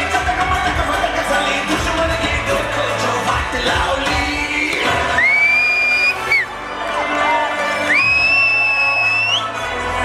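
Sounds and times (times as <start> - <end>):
crowd cheering and shouting: 0.0 - 10.0
dance music: 0.0 - 10.0.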